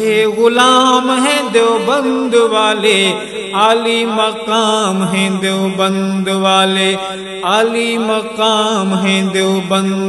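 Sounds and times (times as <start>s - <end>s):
man singing devotional chant: 0.0s - 10.0s.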